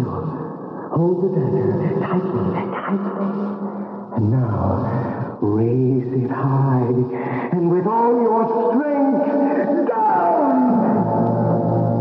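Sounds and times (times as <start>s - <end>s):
low music drone: 10.5s - 12.0s.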